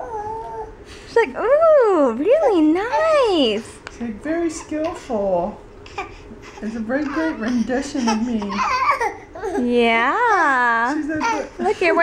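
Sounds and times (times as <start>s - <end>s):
baby cooing: 5.8s - 9.6s.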